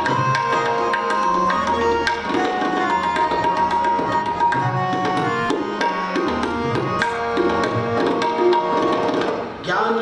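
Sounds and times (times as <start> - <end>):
tabla strokes: 0.0 - 9.6
harmonium chords: 0.0 - 9.7.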